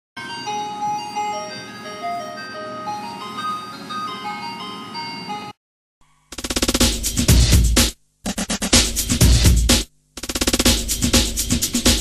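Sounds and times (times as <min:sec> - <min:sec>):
electronic chiming jingle: 0:00.2 - 0:05.6.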